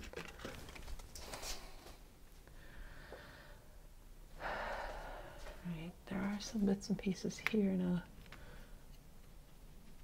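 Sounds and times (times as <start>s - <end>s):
rustling and scraping: 0.0s - 2.1s.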